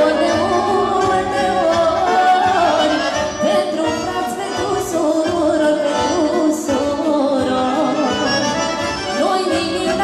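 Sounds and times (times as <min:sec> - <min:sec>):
accordion: 0:00.0 - 0:10.0
violin: 0:00.0 - 0:10.0
woman singing folk music: 0:00.0 - 0:10.0.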